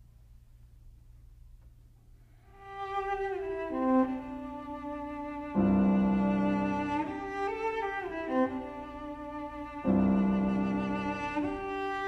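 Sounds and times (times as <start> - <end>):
bowed cello melody: 2.5 - 12.0.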